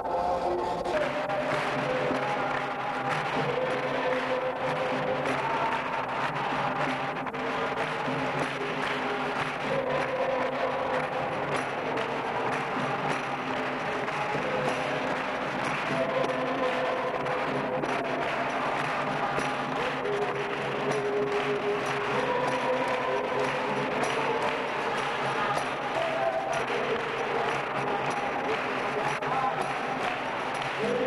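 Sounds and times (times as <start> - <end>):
chorus of voices singing: 0.0 - 31.0
hands clapping: 0.0 - 31.0.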